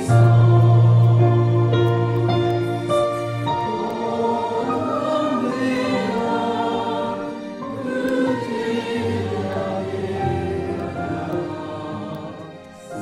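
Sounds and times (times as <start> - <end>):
choir singing: 0.0 - 13.0.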